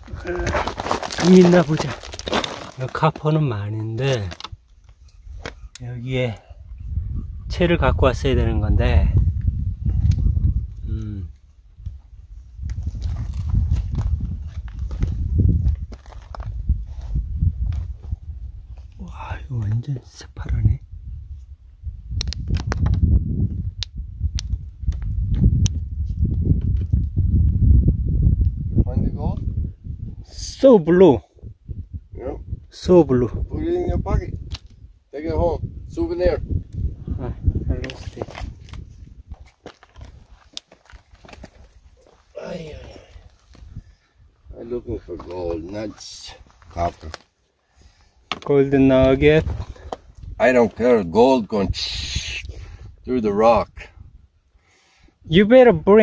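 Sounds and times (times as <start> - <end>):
footsteps on gravel: 0.0 - 3.3, 37.9 - 43.7
footsteps crunching on stony ground: 0.0 - 5.6, 12.6 - 18.1, 37.8 - 43.7, 45.0 - 47.4
low rumble on microphone: 6.4 - 19.6, 20.4 - 30.3.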